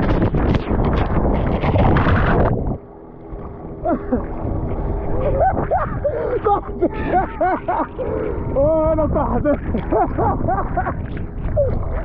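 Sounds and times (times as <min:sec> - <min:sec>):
muffled underwater sound: 0:00.0 - 0:12.0
water splashing: 0:00.0 - 0:12.0
wind buffeting: 0:00.0 - 0:12.0.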